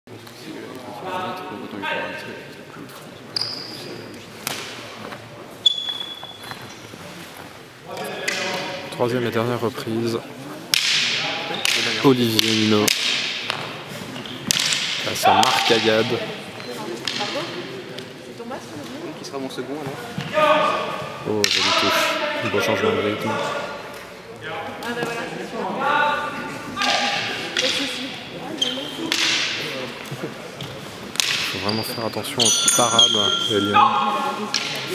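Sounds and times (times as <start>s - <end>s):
sharp knocks echoing in hall: 10.7s - 16.2s, 20.1s - 22.4s, 26.7s - 28.3s, 29.0s - 30.0s.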